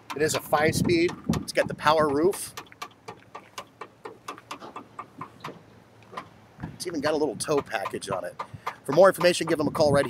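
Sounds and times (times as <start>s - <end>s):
rapid regular ticking: 0.0s - 6.4s, 7.0s - 10.0s.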